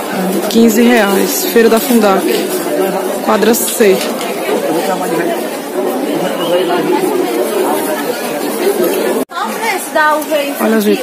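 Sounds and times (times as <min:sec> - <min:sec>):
babble of many voices: 0:00.0 - 0:11.0.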